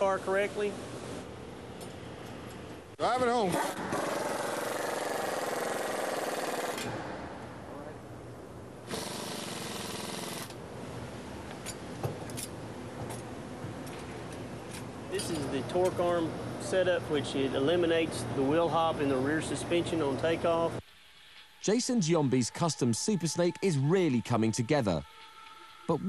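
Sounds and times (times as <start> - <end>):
pneumatic impact wrench: 3.5 - 7.1, 8.9 - 10.6.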